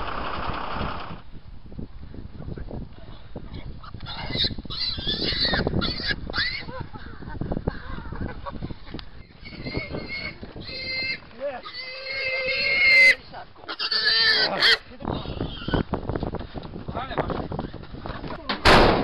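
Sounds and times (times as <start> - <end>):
pig squealing: 3.8 - 6.7, 9.2 - 15.8
loud thump: 18.6 - 19.0.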